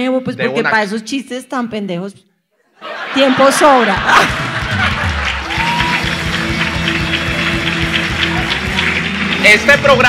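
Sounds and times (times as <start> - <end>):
audience applause: 3.8 - 10.0.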